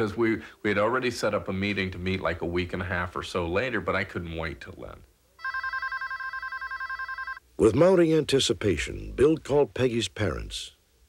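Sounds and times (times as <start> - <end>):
telephone ringing: 5.4 - 7.4.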